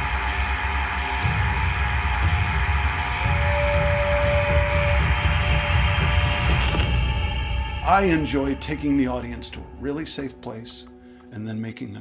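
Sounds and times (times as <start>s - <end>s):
dark ambient film score: 0.0s - 12.0s.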